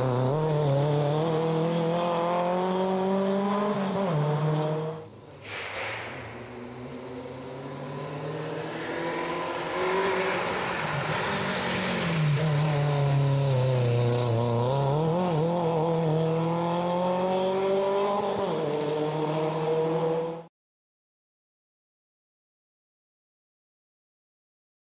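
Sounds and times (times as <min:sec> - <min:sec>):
rally car engine at high revs: 0:00.0 - 0:05.1, 0:06.6 - 0:20.5.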